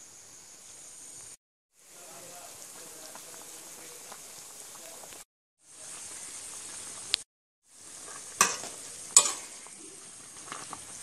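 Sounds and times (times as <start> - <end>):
food sizzling in a pan: 0.2 - 11.0.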